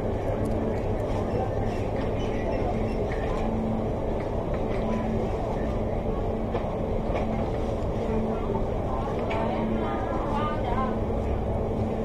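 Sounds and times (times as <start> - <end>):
indistinct customer chatter: 0.0 - 12.0
low rumble of room noise: 0.0 - 12.0.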